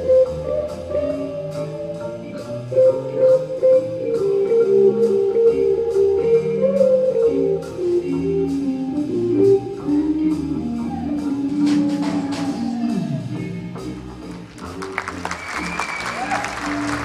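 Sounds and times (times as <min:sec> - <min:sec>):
electric guitar melody: 0:00.0 - 0:15.3
bass notes: 0:00.0 - 0:17.0.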